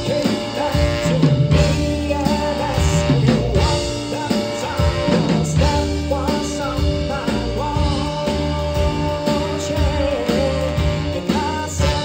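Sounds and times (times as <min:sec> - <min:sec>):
horn-rock band playing: 0:00.0 - 0:12.0
man singing: 0:00.0 - 0:12.0.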